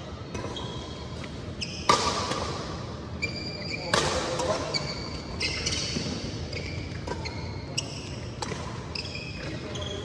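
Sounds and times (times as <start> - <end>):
shoes squeaking on court floor: 0.3 - 2.2, 3.1 - 10.0
racket striking shuttlecock: 1.8 - 2.7, 8.4 - 8.8.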